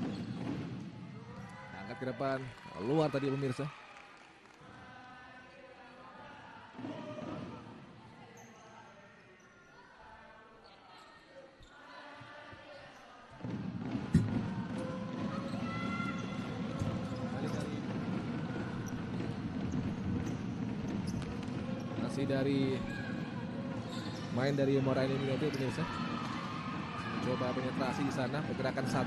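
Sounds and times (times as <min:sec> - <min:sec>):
crowd noise in echoing hall: 0:00.0 - 0:29.0.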